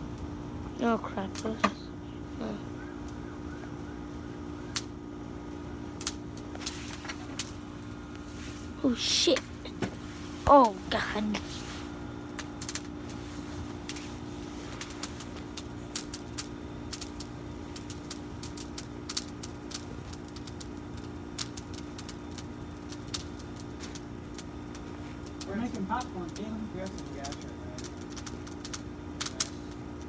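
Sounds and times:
campfire crackling and popping: 0:00.0 - 0:30.0
steady low hum: 0:00.0 - 0:30.0.

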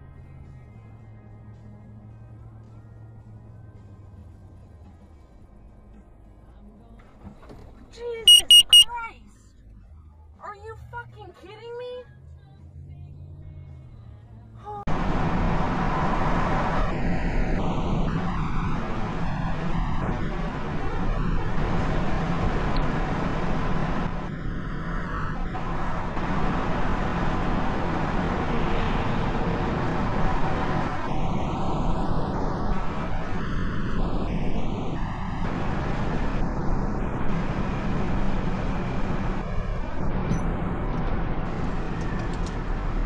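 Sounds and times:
low hum of slow car: 0:00.0 - 0:43.0
road and wind noise inside car: 0:00.0 - 0:43.0.

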